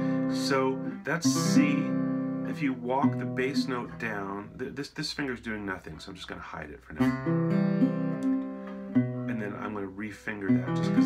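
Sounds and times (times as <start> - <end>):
resonator guitar fingerpicked chords: 0.0 - 4.8, 7.0 - 11.0.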